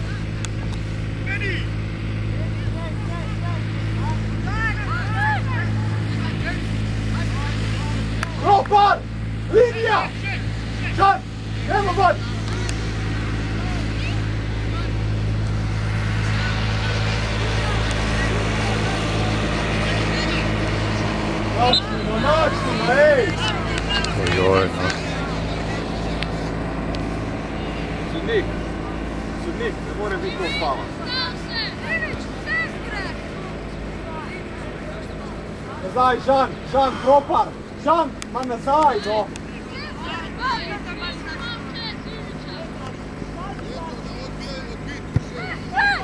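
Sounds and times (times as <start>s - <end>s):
steady low hum: 0.0s - 46.0s
voices shouting on football pitch: 0.0s - 46.0s.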